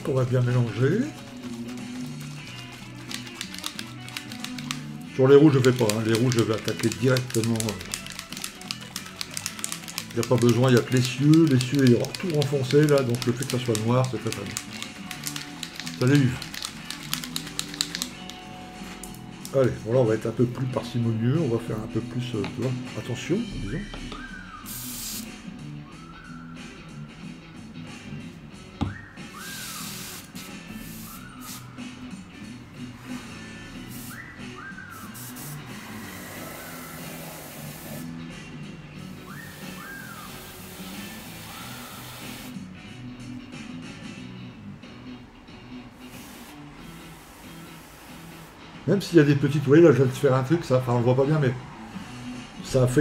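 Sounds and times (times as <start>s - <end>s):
background music: 0.0s - 53.0s
airbrush spraying hiss: 24.6s - 25.4s, 29.4s - 31.7s, 33.1s - 34.2s, 34.9s - 38.2s, 39.4s - 42.6s, 46.0s - 48.6s.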